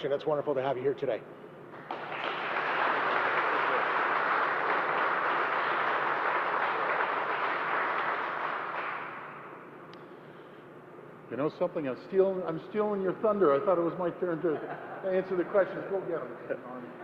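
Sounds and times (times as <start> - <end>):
audience applauding: 1.8 - 9.4.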